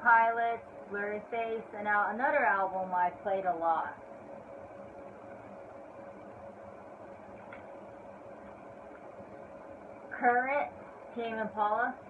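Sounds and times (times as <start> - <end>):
faint continuous tone: 0.0 - 12.0
low room hum: 0.0 - 12.0.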